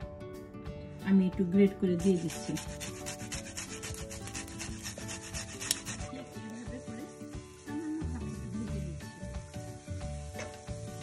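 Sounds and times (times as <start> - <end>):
garlic scraping on metal grater: 2.0 - 6.4.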